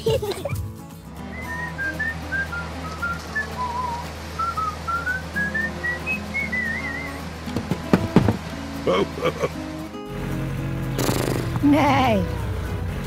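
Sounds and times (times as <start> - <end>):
light background music: 0.0 - 13.0
person whistling a tune: 1.2 - 7.3.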